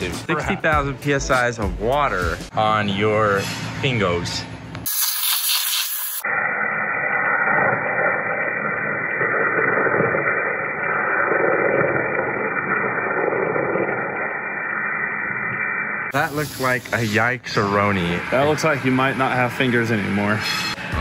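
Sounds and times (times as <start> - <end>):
waterjet stream hissing: 4.9 - 21.0.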